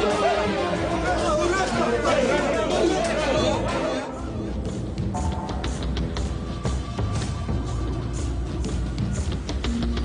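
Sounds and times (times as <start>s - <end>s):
crowd of men talking: 0.0s - 4.9s
background music: 0.0s - 10.0s.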